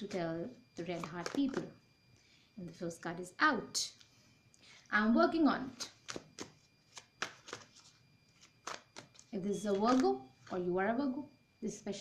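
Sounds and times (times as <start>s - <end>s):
cards being shuffled: 1.0s - 1.6s, 5.9s - 10.6s.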